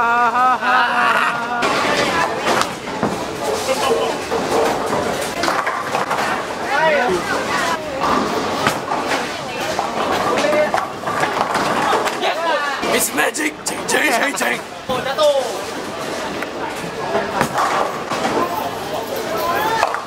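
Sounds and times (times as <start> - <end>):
bowling balls rolling: 1.4 - 20.0.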